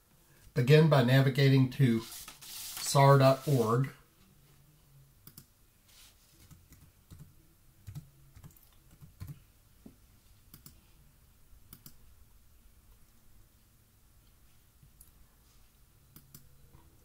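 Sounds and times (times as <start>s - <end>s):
computer keyboard and mouse clicks: 7.9s - 9.4s, 10.5s - 10.8s, 11.7s - 12.0s, 16.1s - 16.5s.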